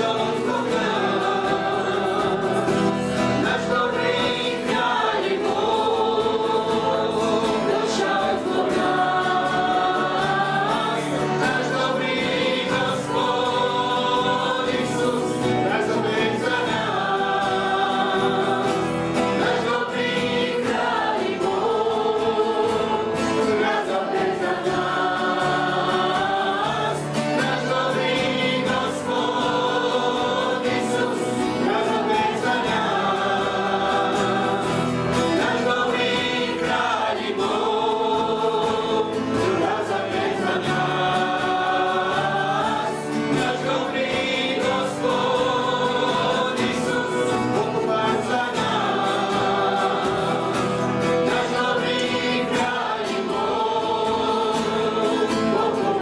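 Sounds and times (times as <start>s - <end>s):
acoustic guitar: 0.0s - 56.0s
group singing a worship song: 0.0s - 56.0s
keyboard accompaniment: 0.0s - 56.0s.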